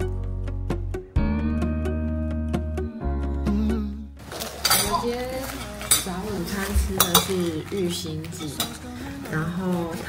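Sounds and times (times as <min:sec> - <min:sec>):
bowls and cutlery clinking: 0:04.3 - 0:09.5.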